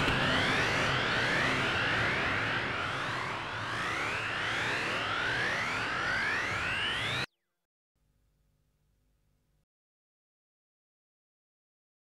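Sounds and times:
rising synthesizer sweeps: 0.0s - 7.4s.

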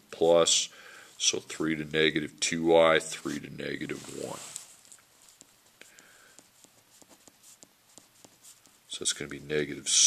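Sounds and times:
pencil scratching on paper: 5.2s - 9.2s.

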